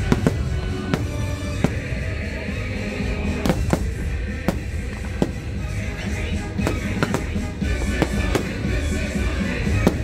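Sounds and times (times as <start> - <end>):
fireworks bursting: 0.0 - 10.0
loud show music: 0.0 - 10.0.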